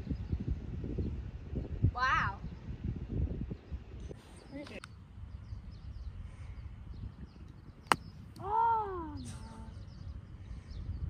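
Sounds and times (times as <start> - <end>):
golf club striking ball: 7.8 - 8.1.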